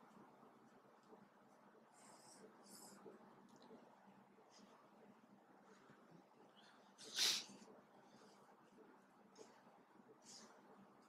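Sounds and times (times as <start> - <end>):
sharp nasal sniff: 7.0 - 7.5.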